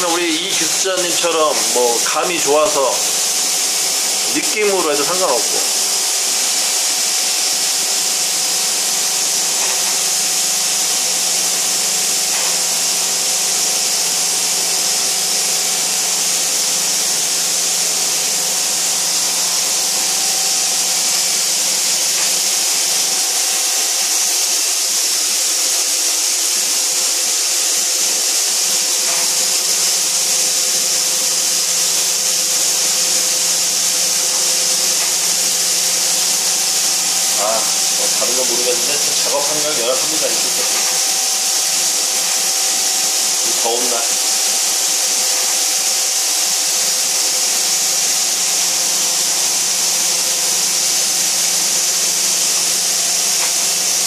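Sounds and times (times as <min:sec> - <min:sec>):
machine hiss: 0:00.0 - 0:54.0.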